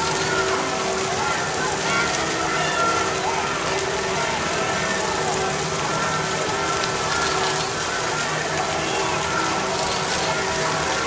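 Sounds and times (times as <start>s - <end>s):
bonfire burning: 0.0s - 11.0s
rain falling steadily: 0.0s - 11.0s.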